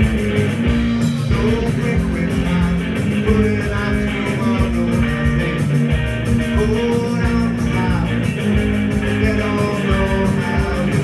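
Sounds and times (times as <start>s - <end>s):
drum kit steady beat: 0.0s - 11.0s
electric bass: 0.0s - 11.0s
electric guitar: 0.0s - 11.0s
man singing into a microphone: 1.2s - 5.7s, 6.4s - 8.3s, 9.0s - 11.0s.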